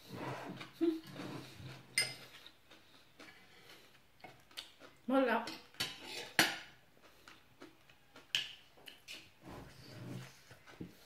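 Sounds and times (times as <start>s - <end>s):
tableware clinking: 2.0s - 2.3s.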